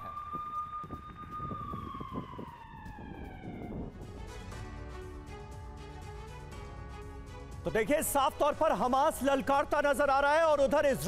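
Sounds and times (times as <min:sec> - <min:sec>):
emergency vehicle siren: 0:00.0 - 0:04.5.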